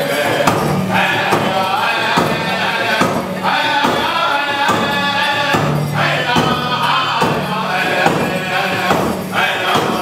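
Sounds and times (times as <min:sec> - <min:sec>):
group of voices singing: 0:00.0 - 0:10.0
steady beat: 0:00.0 - 0:10.0.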